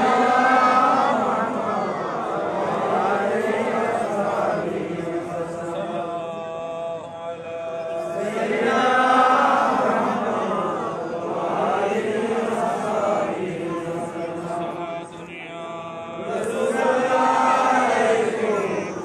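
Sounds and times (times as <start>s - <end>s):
men chanting in chorus: 0.0s - 19.0s.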